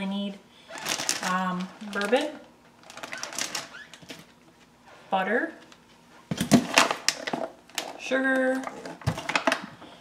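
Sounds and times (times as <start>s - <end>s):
plastic bag crinkling: 0.7s - 4.3s.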